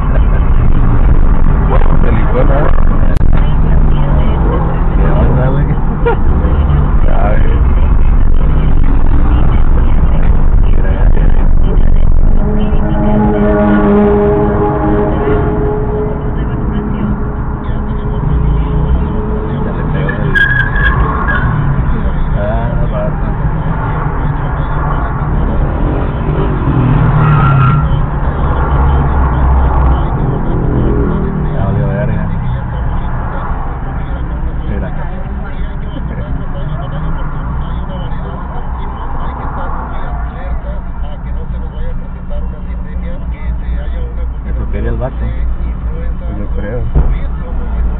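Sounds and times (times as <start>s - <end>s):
engine and traffic rumble: 0.0s - 47.9s
indistinct voices: 0.0s - 47.9s.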